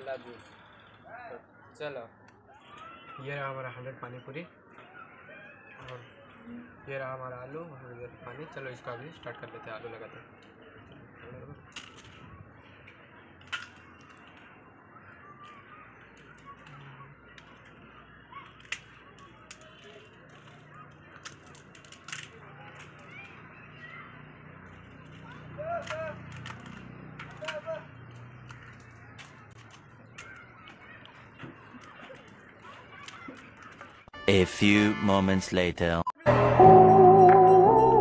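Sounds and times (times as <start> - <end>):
fried shells cracking: 11.6 - 34.1.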